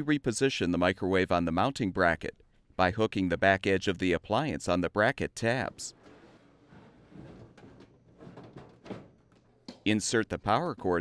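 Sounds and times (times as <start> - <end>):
microwave oven being handled: 5.9 - 9.8.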